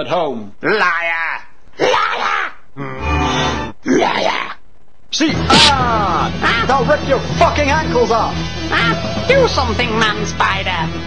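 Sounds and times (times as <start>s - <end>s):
background music: 5.2s - 11.0s.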